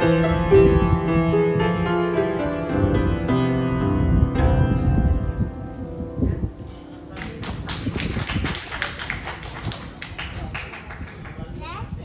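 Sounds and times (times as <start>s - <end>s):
audience clapping: 7.1s - 11.6s.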